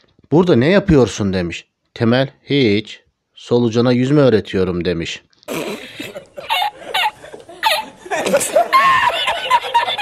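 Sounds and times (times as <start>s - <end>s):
laughter in bursts: 5.5s - 10.0s.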